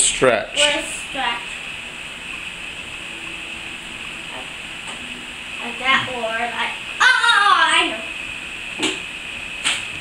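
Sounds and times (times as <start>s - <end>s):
recorder hiss: 0.0s - 10.0s.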